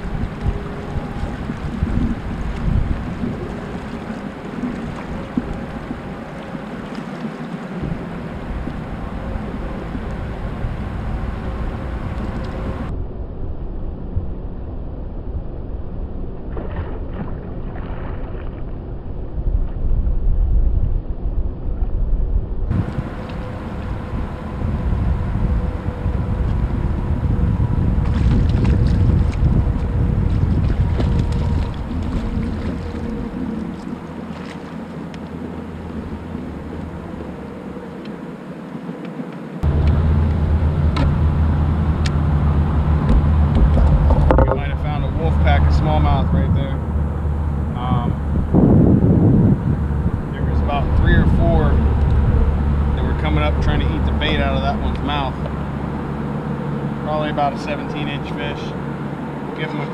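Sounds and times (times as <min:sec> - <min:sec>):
faint steady hum: 0:00.0 - 0:16.6, 0:22.3 - 0:59.9
water noise around a hull: 0:00.0 - 0:59.9
wind rushing over microphone: 0:00.0 - 0:59.9.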